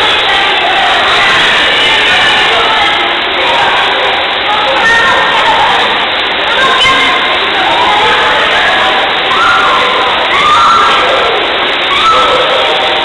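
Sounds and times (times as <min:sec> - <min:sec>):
children shouting: 0:00.0 - 0:13.0.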